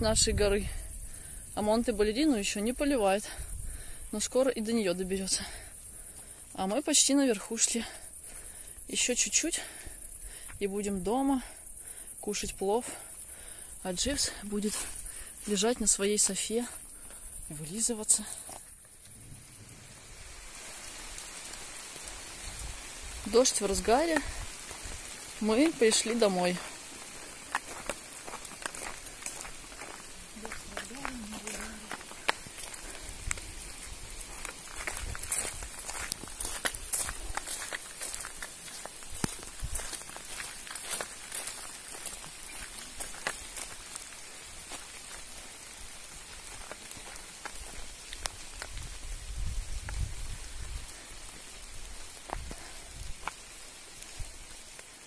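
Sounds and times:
steady rain with ticking drops: 0:00.0 - 0:55.0
low rumbles: 0:18.8 - 0:21.2.

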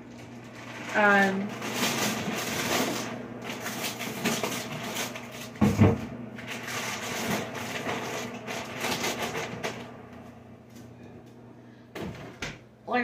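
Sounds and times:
frozen food bag rustling: 0:00.0 - 0:09.9
freezer door knocks: 0:05.6 - 0:06.1.

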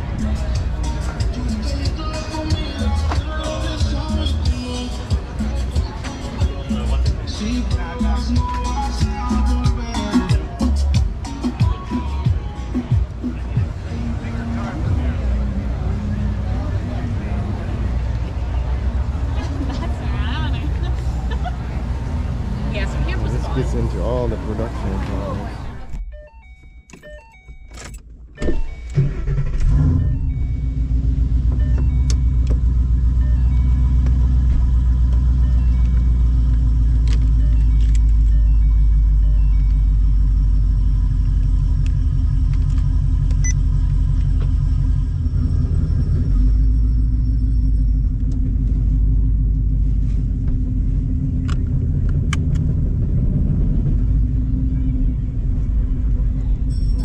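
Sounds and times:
car engine rumbling: 0:00.0 - 0:57.0.

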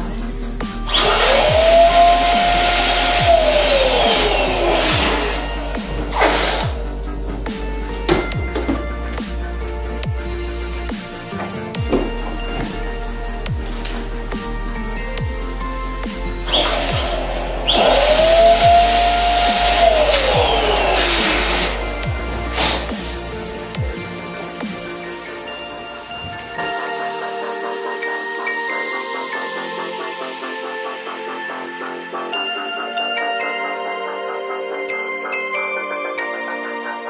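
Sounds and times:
electric balloon pump whine: 0:00.7 - 0:28.2.

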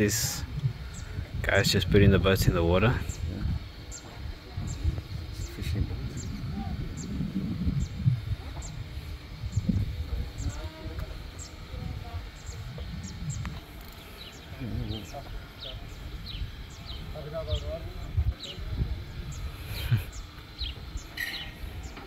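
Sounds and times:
faint distant voices: 0:00.0 - 0:22.0
small birds chirping: 0:00.0 - 0:22.0
steady low rumble: 0:00.0 - 0:22.0.

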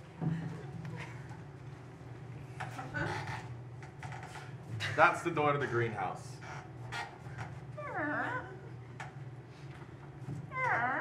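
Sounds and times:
person making squeaky creaking sounds: 0:10.5 - 0:11.0.

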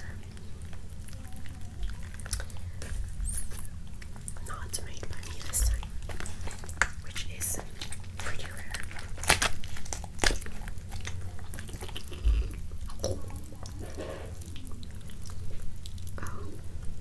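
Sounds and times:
chicken being torn apart: 0:07.8 - 0:12.2.

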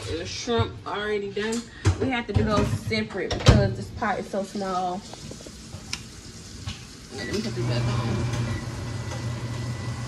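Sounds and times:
pot of water bubbling: 0:04.4 - 0:10.0.

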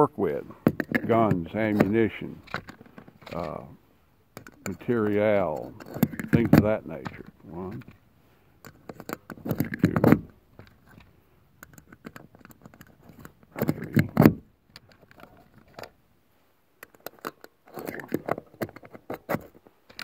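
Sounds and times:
person mumbling: 0:03.3 - 0:03.8.

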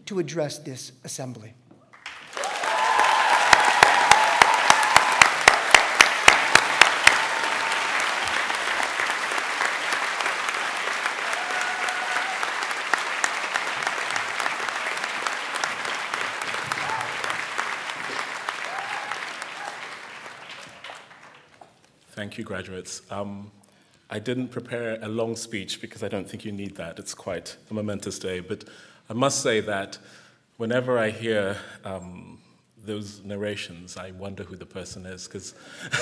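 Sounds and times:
audience applause: 0:02.0 - 0:21.7
person clapping loudly: 0:02.0 - 0:21.8.

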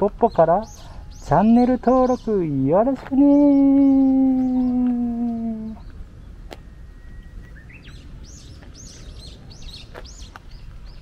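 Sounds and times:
bird chirping: 0:00.0 - 0:11.0
falling drawn-out vocal: 0:03.6 - 0:05.8.

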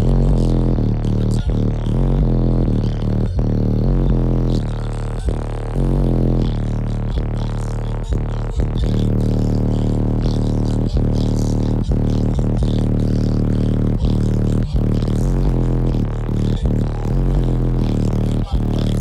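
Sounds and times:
bass-heavy music from car subwoofers: 0:00.0 - 0:19.0.

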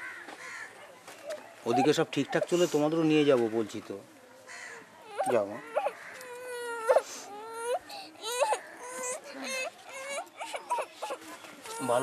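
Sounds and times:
small child crying: 0:05.0 - 0:12.0.

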